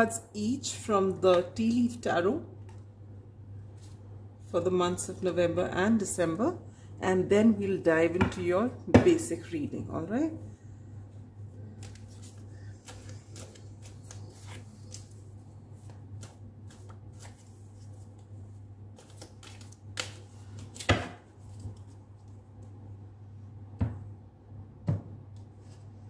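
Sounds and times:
steady low hum: 0.0 - 26.0
cards being shuffled: 11.7 - 18.3, 19.0 - 20.9.

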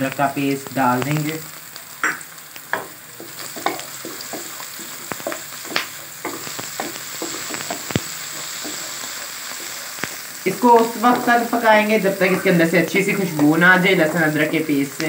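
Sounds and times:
onions sizzling in oil: 0.0 - 15.0
spatula knocking on pan: 2.0 - 9.8.

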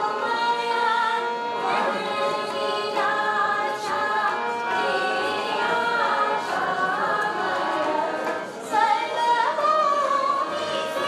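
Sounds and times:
group singing slow melody: 0.0 - 11.0.

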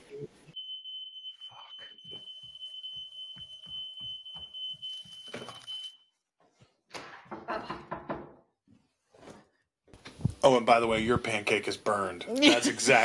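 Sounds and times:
smoke alarm high-pitched tone: 0.6 - 6.2.

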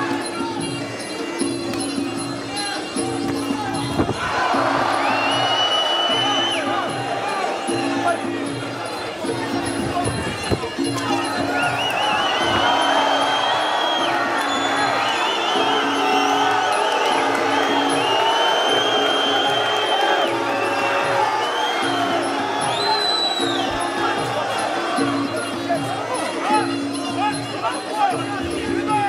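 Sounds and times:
crowd cheering: 0.0 - 29.0
music beat: 3.0 - 29.0.

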